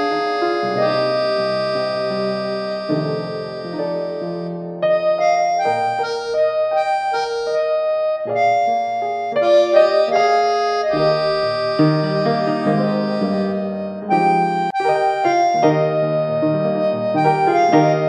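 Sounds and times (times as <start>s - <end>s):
gentle electric piano melody: 0.0s - 18.0s.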